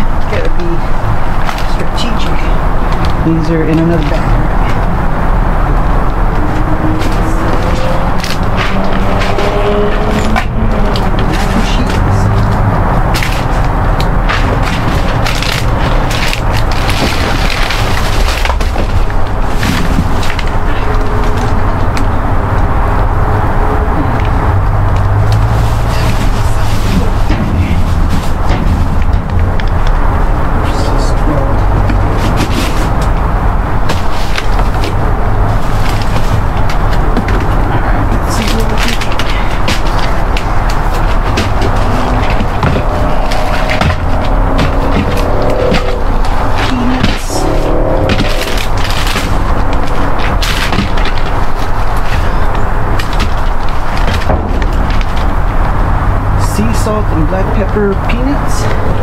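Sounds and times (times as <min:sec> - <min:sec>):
loud steady low rumble: 0:00.0 - 0:59.0
plastic bags and cardboard rustling: 0:05.9 - 0:21.8, 0:25.4 - 0:56.0
items knocking: 0:06.0 - 0:22.2, 0:25.0 - 0:31.0, 0:31.7 - 0:55.9.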